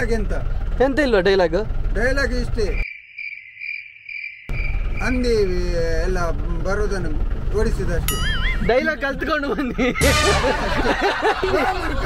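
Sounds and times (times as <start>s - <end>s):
insect trilling: 2.6s - 5.5s
loud low rumble: 4.5s - 8.2s.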